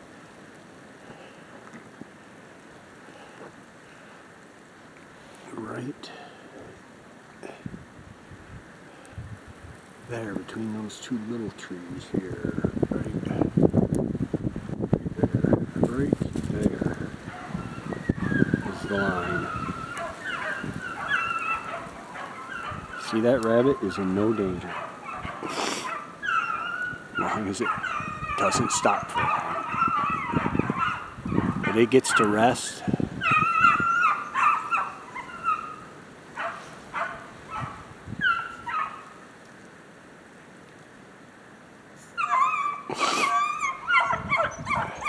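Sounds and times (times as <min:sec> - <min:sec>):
hounds yelping: 0:17.0 - 0:39.2, 0:42.0 - 0:45.0
beagles baying: 0:17.0 - 0:39.3, 0:42.1 - 0:45.0.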